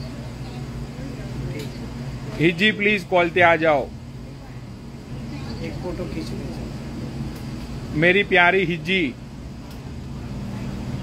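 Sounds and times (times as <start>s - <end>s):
low hum of vehicle noise: 0.0s - 11.0s.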